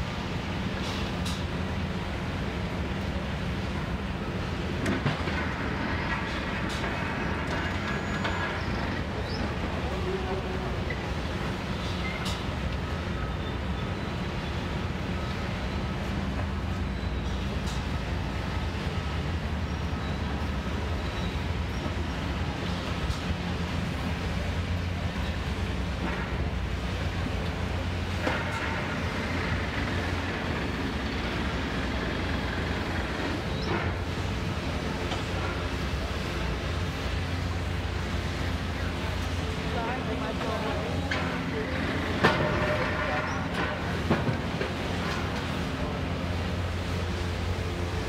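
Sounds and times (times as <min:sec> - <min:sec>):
city street noise: 0:00.0 - 0:48.0
diesel engine drone: 0:00.0 - 0:48.0.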